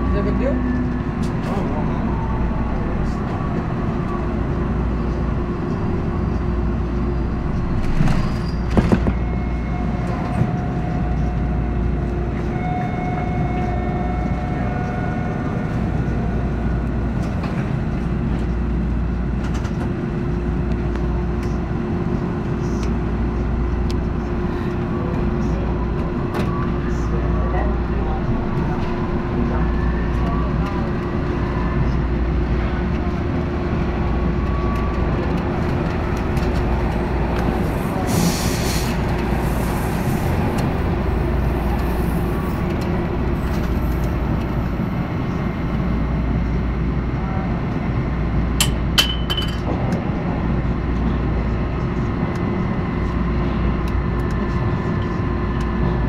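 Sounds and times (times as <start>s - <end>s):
subway train rumbling on rails: 0.0s - 56.0s.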